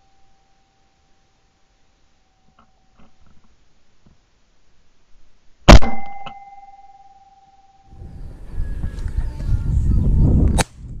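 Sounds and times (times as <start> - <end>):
loud shotgun shot: 5.7 - 6.2.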